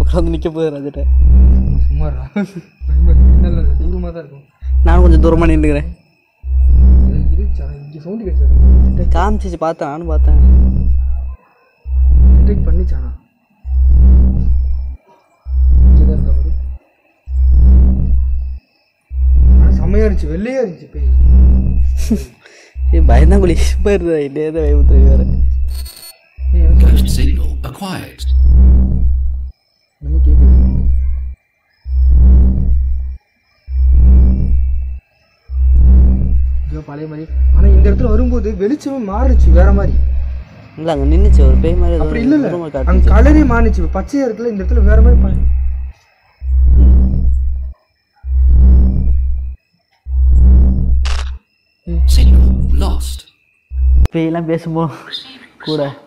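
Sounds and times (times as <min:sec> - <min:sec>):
deep booming electronic pulses: 0:00.0 - 0:00.4, 0:01.0 - 0:11.3, 0:11.9 - 0:22.1, 0:22.8 - 0:24.0, 0:24.6 - 0:25.8, 0:26.4 - 0:51.4, 0:52.0 - 0:53.1, 0:53.7 - 0:54.1
faint steady high tone: 0:22.8 - 0:28.4
short high beeps: 0:25.7 - 0:26.2.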